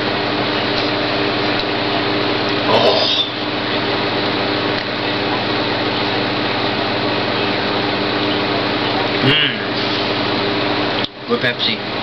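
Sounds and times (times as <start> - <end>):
fan whirring drone: 0.0 - 12.0.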